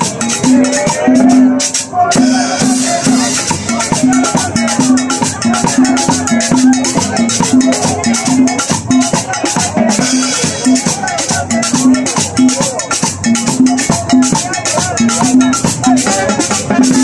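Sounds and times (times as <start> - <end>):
shaker and drum rhythm: 0.0 - 17.0
upbeat latin dance music: 0.0 - 17.0.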